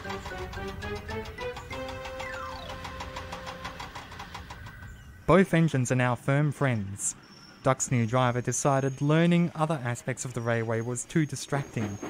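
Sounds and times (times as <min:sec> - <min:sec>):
rhythmic engine-like chugging: 0:00.0 - 0:05.5.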